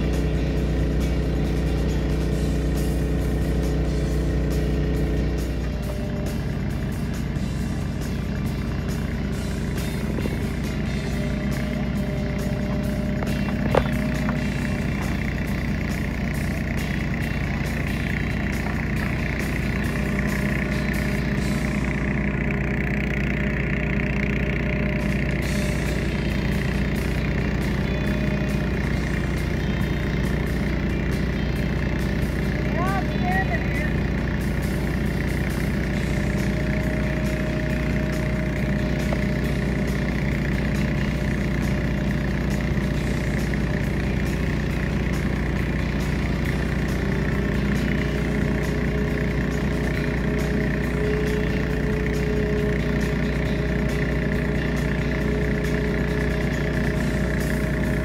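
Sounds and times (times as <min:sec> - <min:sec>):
diesel engine droning: 0:00.0 - 0:58.0.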